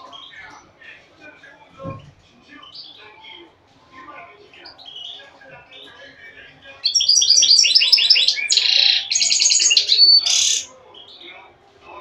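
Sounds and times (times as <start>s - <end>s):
goldfinch singing: 6.8s - 10.7s.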